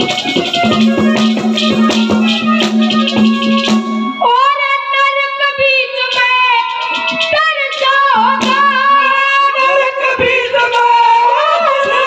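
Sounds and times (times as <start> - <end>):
boy singing through a microphone: 0.0 - 12.0
sharp percussion strikes: 0.0 - 12.0.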